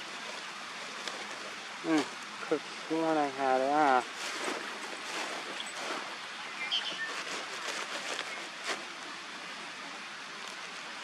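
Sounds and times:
steady outdoor hiss: 0.0 - 11.0
rummaging through a gear bag: 4.0 - 6.2, 6.8 - 8.9.

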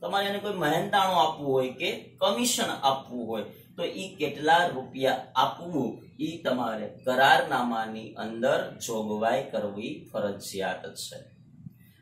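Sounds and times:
man speaking: 0.0 - 11.2.

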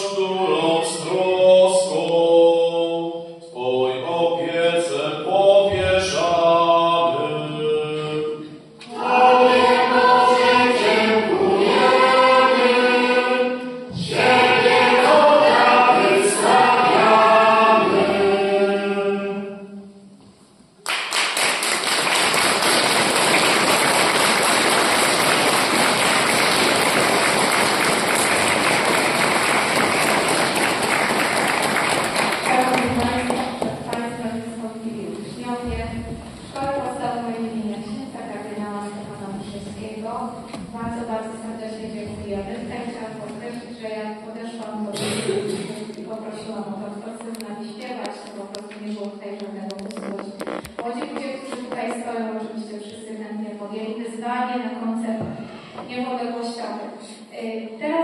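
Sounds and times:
children's choir singing: 0.0 - 19.8, 22.0 - 35.8
audience applause: 20.9 - 33.9.

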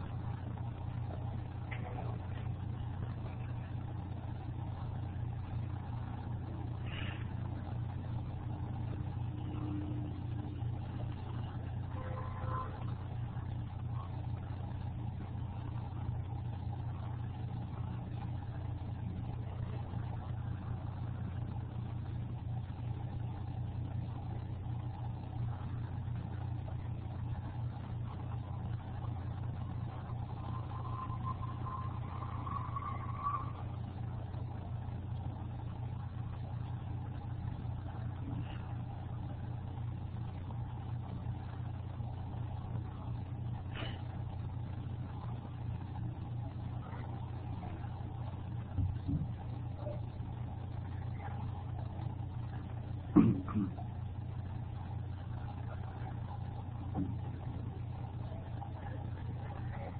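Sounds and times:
steady low microphone hum: 0.0 - 59.9.

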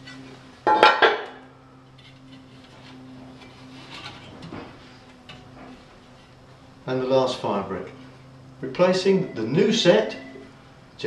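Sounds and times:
metal plate clattering on stone: 0.7 - 1.4.

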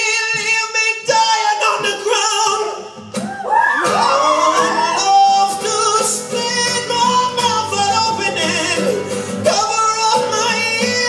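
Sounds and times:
man singing with vibrato: 0.0 - 3.2, 3.8 - 11.0
strummed acoustic guitar: 0.0 - 11.0.

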